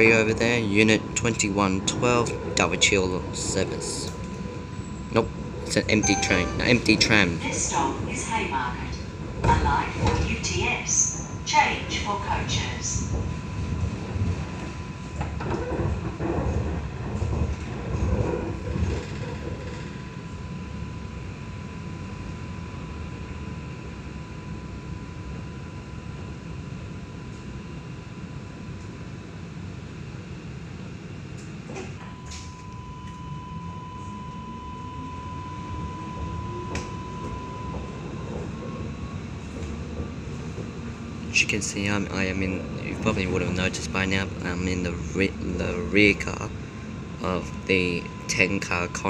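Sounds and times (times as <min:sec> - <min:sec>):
tram interior rumble: 0:00.0 - 0:49.0
thin high tone: 0:05.7 - 0:07.4.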